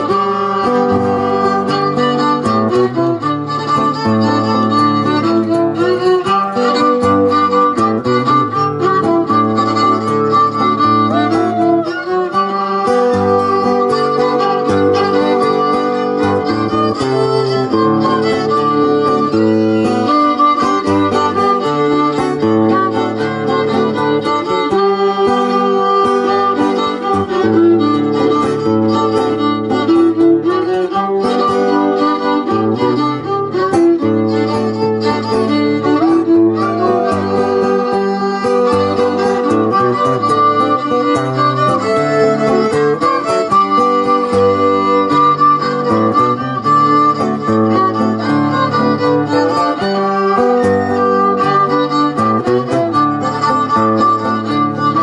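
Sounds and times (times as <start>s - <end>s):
violin and guitar dance music: 0.0s - 55.0s.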